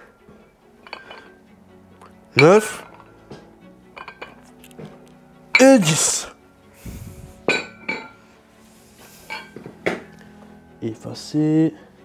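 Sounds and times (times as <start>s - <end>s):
background music: 0.0s - 12.0s
metal dumbbells clinking: 0.8s - 1.4s, 4.0s - 4.4s, 7.5s - 8.2s.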